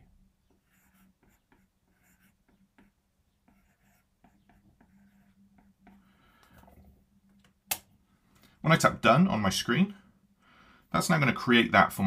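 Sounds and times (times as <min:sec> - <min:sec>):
stylus writing on glass screen: 0:00.0 - 0:06.1
faint low hum: 0:00.0 - 0:12.0.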